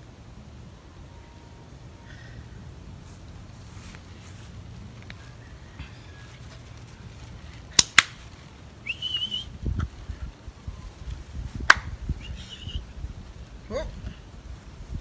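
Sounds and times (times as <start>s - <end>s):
person whistling: 8.8s - 9.6s.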